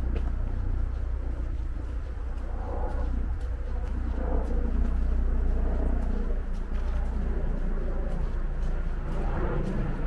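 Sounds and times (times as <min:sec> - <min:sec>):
footsteps on dirt path: 0:00.0 - 0:10.0
low outdoor rumble: 0:00.0 - 0:10.0.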